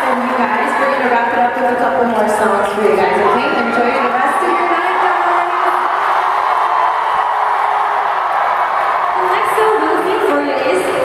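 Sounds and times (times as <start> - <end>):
crowd screaming and cheering: 2.9 - 11.0.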